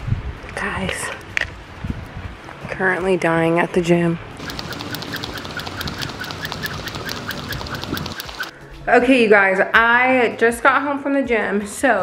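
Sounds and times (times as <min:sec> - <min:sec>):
jump rope slapping concrete: 0:04.4 - 0:08.5.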